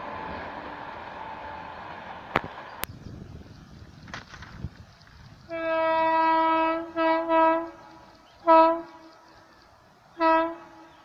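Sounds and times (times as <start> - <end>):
locomotive horn blasts: 5.5 - 7.8, 8.4 - 9.2, 10.2 - 11.0.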